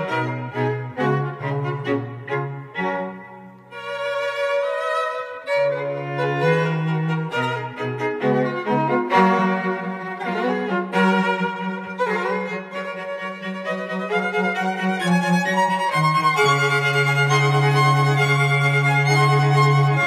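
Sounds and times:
bowed violin melody: 0.0 - 20.0.

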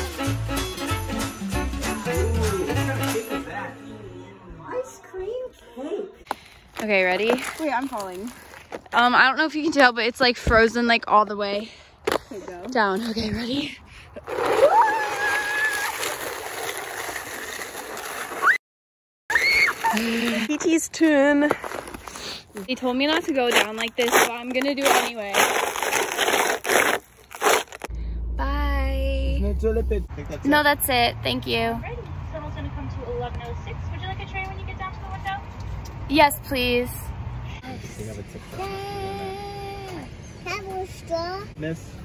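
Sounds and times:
sled scraping downhill: 14.2 - 18.6, 19.3 - 27.9.

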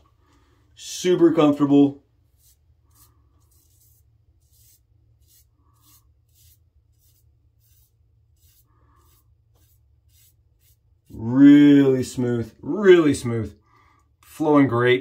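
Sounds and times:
razor scraping stubble: 2.4 - 11.3.

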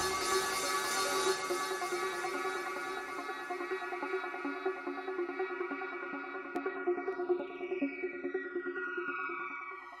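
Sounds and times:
electronic music: 0.0 - 10.0.

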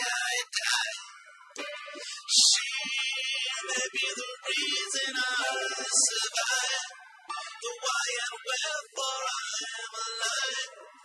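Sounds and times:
person singing: 0.0 - 11.0.

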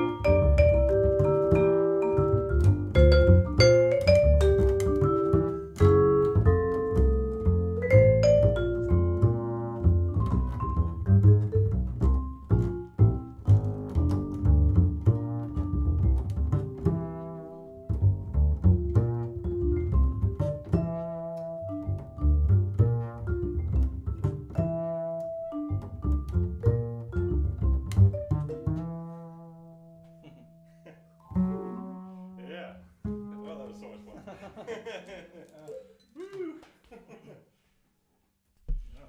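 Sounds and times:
vibraphone played with mallets: 0.0 - 15.0, 19.5 - 29.0
plucked double bass: 0.0 - 34.1.

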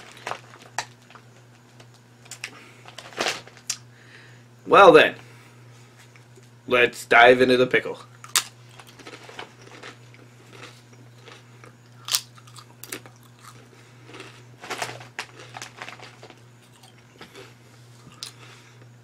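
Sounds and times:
chewing crunchy chip: 8.0 - 19.0.

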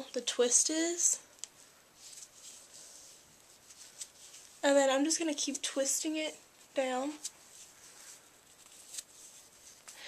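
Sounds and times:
fingers rustling hair: 1.3 - 10.0.

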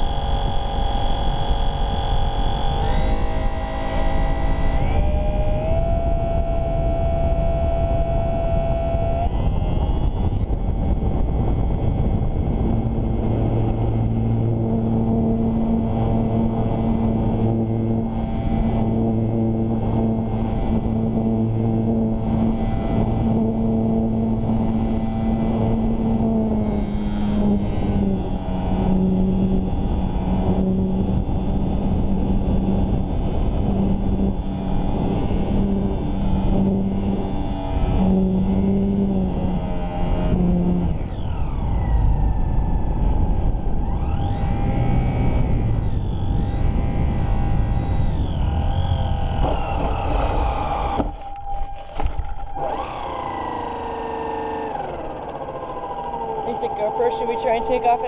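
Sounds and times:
model plane electric motor whine: 0.0 - 58.0
wind rushing over microphone: 0.0 - 58.0.

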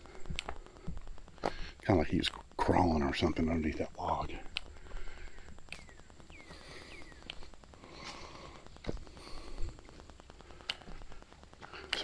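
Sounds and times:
footsteps on leafy dirt trail: 4.4 - 12.0
twigs snapping underfoot: 4.5 - 9.0, 9.9 - 12.0.

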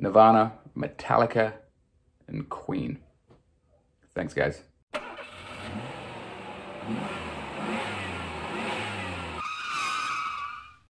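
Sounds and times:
vehicle engine revving: 5.0 - 9.4.

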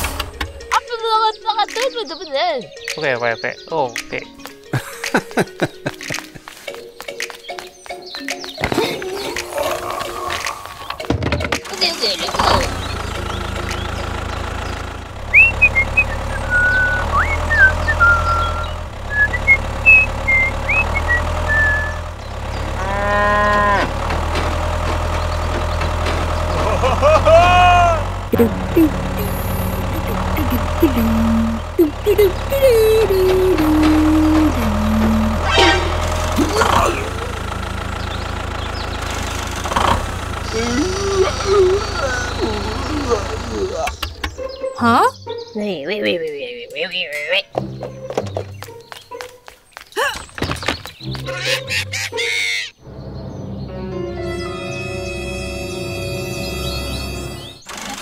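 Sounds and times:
tractor engine drone: 0.0 - 1.2, 8.6 - 48.8, 51.0 - 58.0
short chirps: 15.4 - 22.0
cattle lowing: 22.6 - 24.0.

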